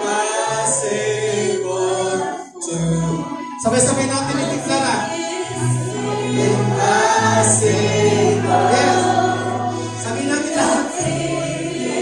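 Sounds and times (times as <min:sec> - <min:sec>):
congregation singing worship song: 0:00.0 - 0:12.0
keyboard: 0:00.0 - 0:12.0.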